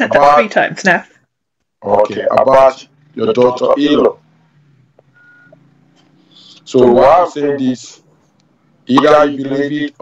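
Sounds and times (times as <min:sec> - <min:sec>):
short high beep: 0:05.1 - 0:05.6.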